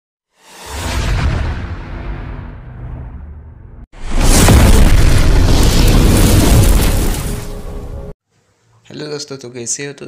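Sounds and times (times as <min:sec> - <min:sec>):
cinematic boom: 0:00.7 - 0:07.9
deep rumble: 0:01.0 - 0:07.4.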